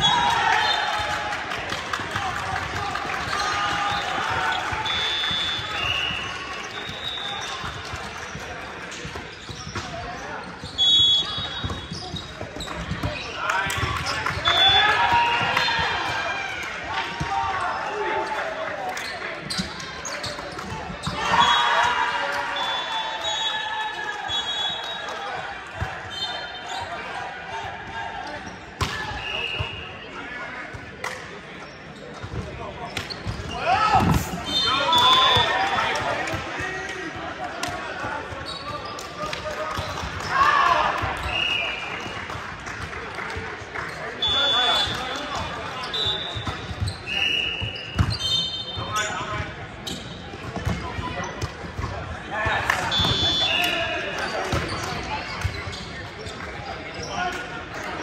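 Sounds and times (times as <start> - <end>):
players shouting and cheering: 0.0 - 31.5, 32.4 - 58.0
sneaker squeaks on floor: 9.1 - 13.4, 19.0 - 21.6, 31.6 - 35.6, 38.3 - 39.1, 43.9 - 51.9, 52.9 - 57.3
volleyball hits: 49.9 - 55.7.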